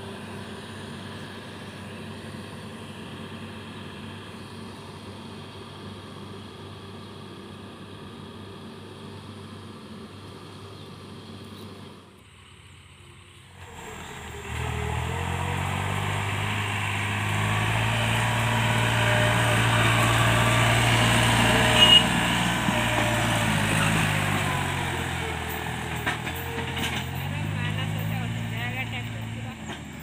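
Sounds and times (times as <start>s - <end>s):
tractor diesel engine passing: 0.0s - 30.0s.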